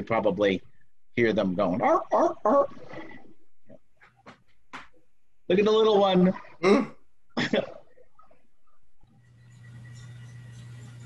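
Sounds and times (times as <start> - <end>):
sea lions barking: 1.8 - 2.9.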